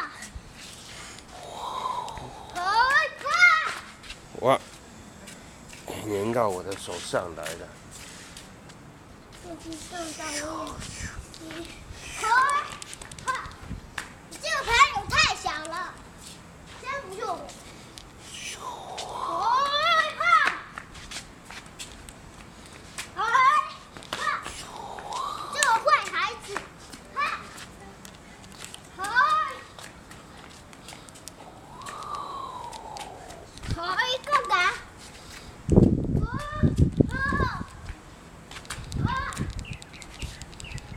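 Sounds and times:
child calling out in play: 1.4s - 3.9s, 9.6s - 13.6s, 18.4s - 20.6s, 23.2s - 26.5s
light footsteps on tiles: 23.9s - 40.9s.

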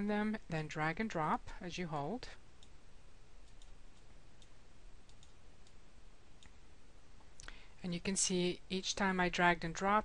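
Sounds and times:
person speaking: 0.0s - 2.4s
background hiss: 0.0s - 10.0s
faint computer mouse clicks: 3.4s - 5.8s.

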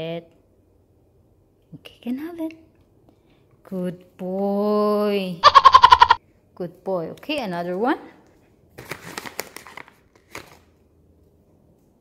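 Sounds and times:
plastic pouch crinkling: 8.7s - 10.8s.

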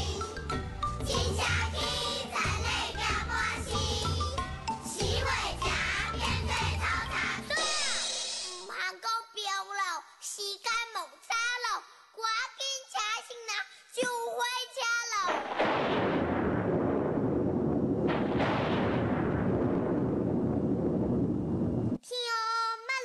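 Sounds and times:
children speaking sing-song: 0.0s - 15.2s
thunder rumble: 15.4s - 22.0s.

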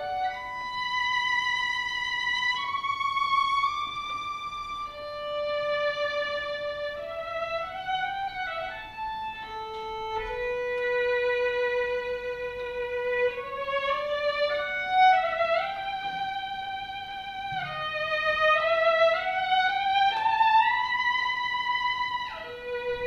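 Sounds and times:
solo violin melody: 0.0s - 23.0s.

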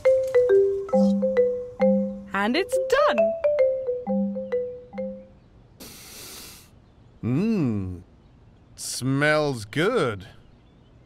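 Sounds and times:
burst of hiss: 5.8s - 6.7s.

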